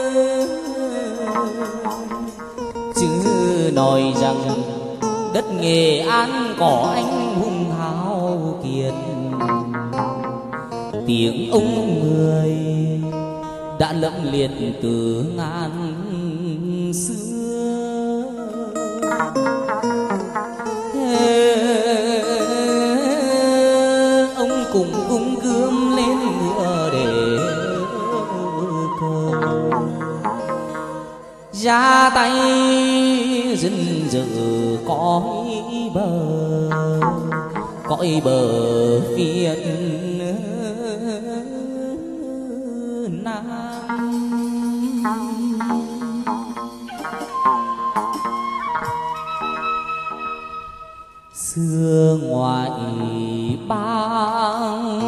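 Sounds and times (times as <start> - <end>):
man singing with vibrato: 0.0 - 55.0
plucked lute: 0.0 - 55.0.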